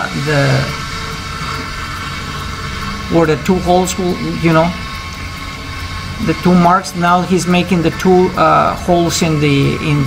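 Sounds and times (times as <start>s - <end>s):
electric drill boring into concrete: 0.0s - 10.0s.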